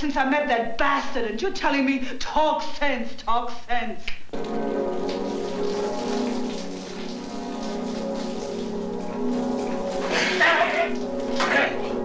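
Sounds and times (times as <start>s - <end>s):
sustained film score chord: 4.3s - 12.0s
shower water spraying: 4.4s - 12.0s.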